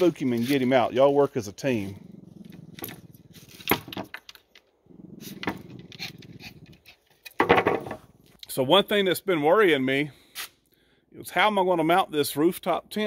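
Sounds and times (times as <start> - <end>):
small dog growling: 1.6 - 3.7, 4.8 - 7.1.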